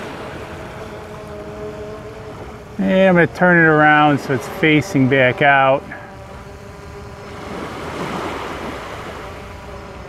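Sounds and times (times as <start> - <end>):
drone propellers buzzing: 0.0 - 10.0
small waves on a shore: 0.0 - 10.0
wind: 0.0 - 10.0.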